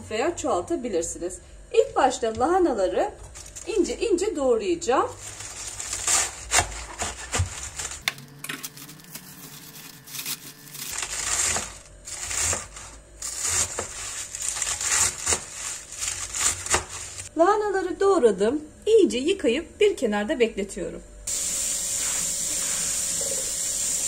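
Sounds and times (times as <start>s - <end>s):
knife slicing cabbage: 5.1s - 17.3s.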